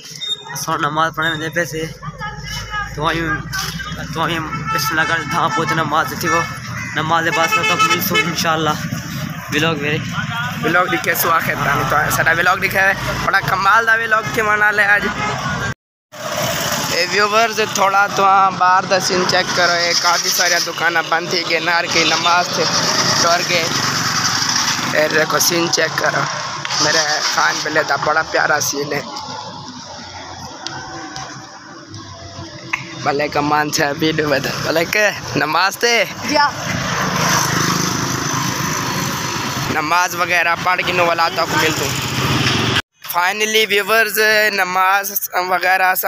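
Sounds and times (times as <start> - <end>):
road traffic noise: 0.0 - 46.0
motorcycle engines running: 16.2 - 42.8.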